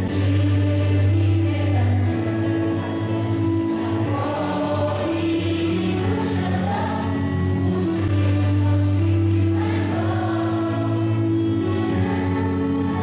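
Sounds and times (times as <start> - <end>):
mixed choir singing: 0.0 - 13.0.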